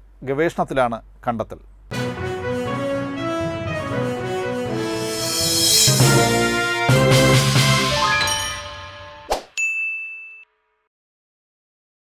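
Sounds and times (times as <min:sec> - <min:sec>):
chiming jingle: 0:07.8 - 0:10.4
bright bell-like ding: 0:08.2 - 0:08.9, 0:09.6 - 0:10.5.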